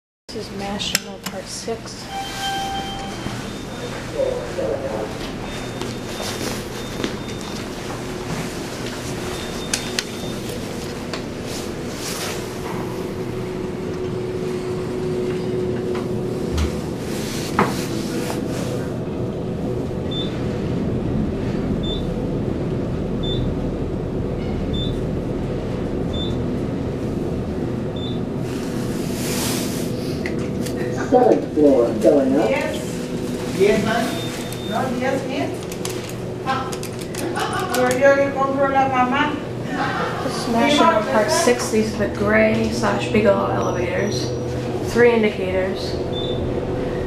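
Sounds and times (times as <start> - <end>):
elevator car hum: 0.3 - 47.0
short high beep: 2.1 - 4.0
low rumble: 12.5 - 30.9.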